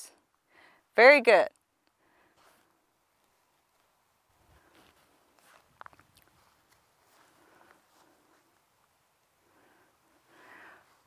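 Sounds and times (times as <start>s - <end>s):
soft faint hiss: 0.0s - 11.0s.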